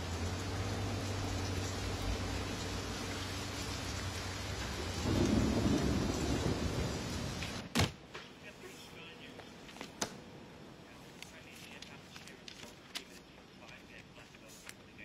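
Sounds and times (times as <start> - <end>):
heavy rain falling: 0.0 - 7.7
low rumble of thunder: 4.4 - 7.6.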